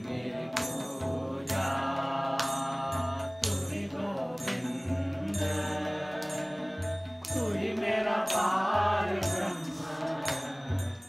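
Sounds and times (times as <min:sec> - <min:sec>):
mantra chanting: 0:00.0 - 0:11.0
sharp percussion strikes: 0:00.0 - 0:11.0.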